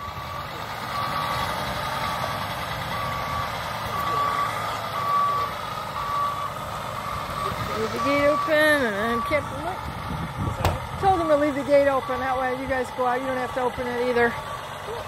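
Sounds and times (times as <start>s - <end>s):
truck engine running: 0.0s - 15.0s
truck reversing alarm beeping: 0.0s - 15.0s.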